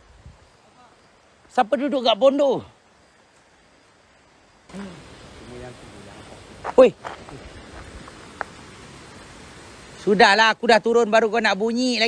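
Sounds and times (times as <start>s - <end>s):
faint night background noise: 0.0s - 12.0s.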